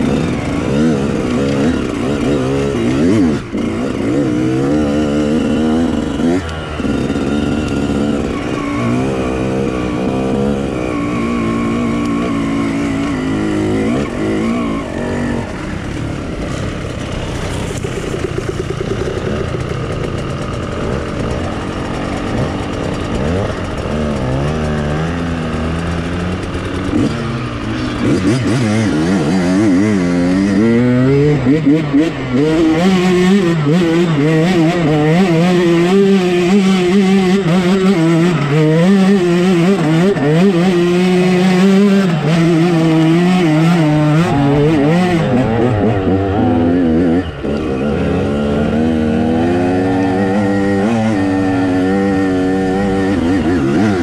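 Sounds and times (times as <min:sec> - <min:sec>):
dirt bike engines revving: 0:00.0 - 0:54.0.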